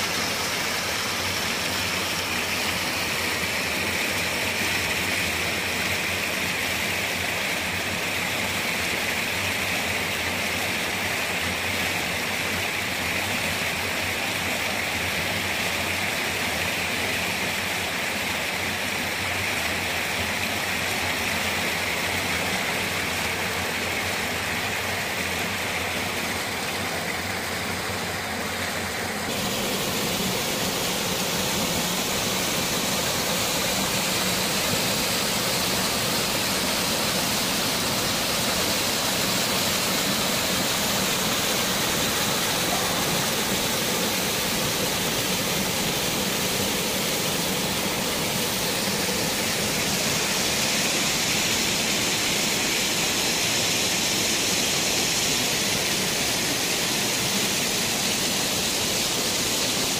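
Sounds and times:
stream rushing over rocks: 0.0 - 59.9.

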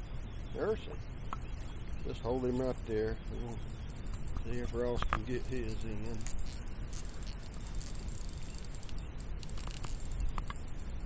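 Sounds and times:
light clicks: 2.6 - 11.0.

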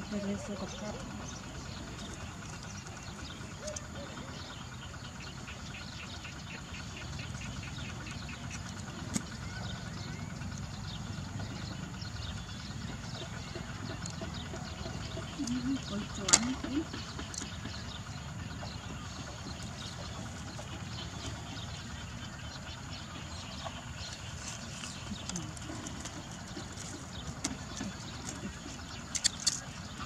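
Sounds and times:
outdoor background noise: 0.0 - 30.0
sharp click: 29.1 - 29.6.

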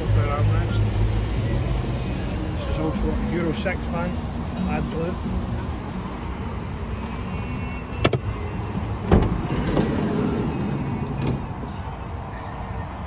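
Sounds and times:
sliding van door rolling open: 9.1 - 11.5.

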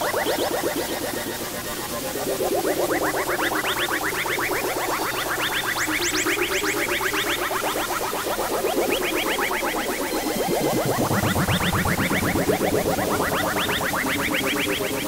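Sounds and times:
wavering low tone: 8.4 - 15.0
rising synthesizer chirps: 9.8 - 14.3.

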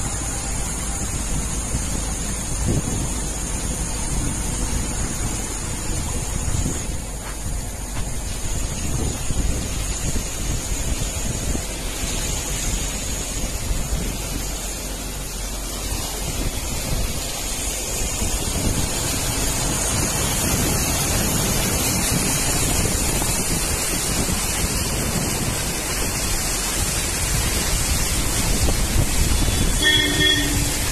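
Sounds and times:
floodwater rushing: 0.0 - 30.9
heavy rain: 0.0 - 30.9
wind buffeting microphone: 0.0 - 30.9.

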